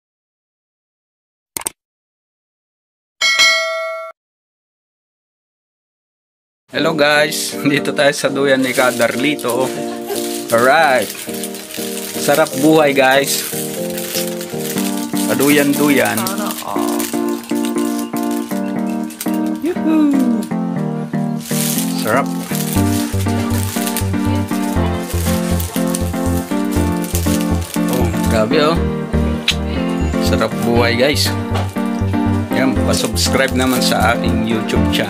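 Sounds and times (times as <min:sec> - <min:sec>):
notification bell ding: 0:03.2 - 0:04.2
background music with steady beat: 0:12.3 - 0:35.0.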